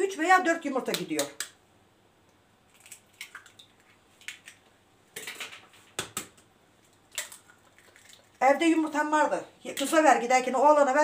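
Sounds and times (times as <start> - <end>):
eggshells tapping and cracking: 2.7 - 4.6.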